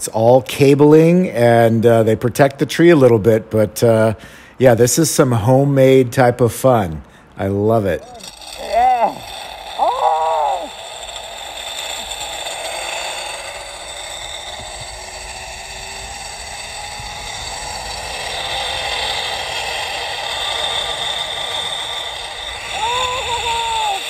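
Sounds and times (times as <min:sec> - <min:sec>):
zipline pulleys whirring on cable: 0:08.0 - 0:24.0
person saying oh: 0:22.7 - 0:24.0.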